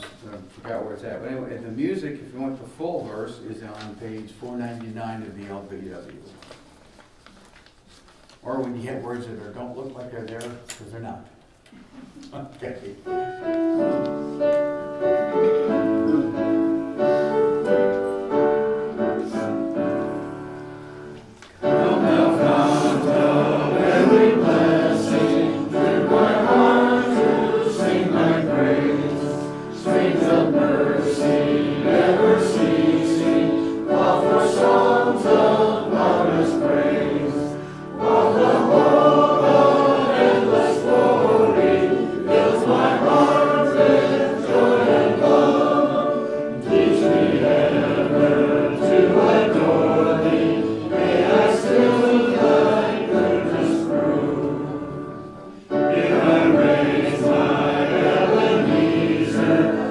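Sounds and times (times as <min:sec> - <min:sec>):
congregation singing a hymn: 0:12.9 - 0:59.9.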